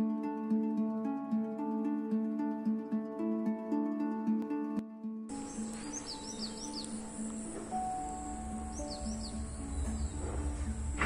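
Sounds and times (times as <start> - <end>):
plucked-string background music: 0.0 - 11.0
outdoor hiss: 5.3 - 11.0
small birds chirping: 5.3 - 11.0.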